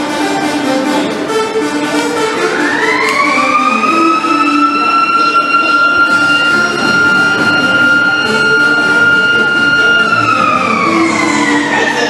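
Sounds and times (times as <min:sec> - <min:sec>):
siren winding up: 0:02.6 - 0:12.0.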